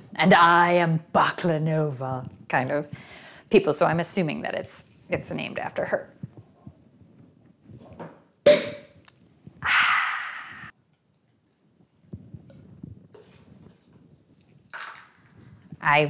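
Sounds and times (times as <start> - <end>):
champagne cork popping: 8.4 - 9.1.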